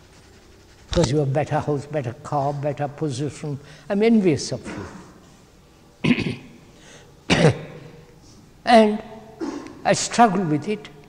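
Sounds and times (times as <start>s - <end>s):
person clearing throat: 4.6s - 5.2s, 6.0s - 6.7s, 7.3s - 8.0s, 9.4s - 9.9s.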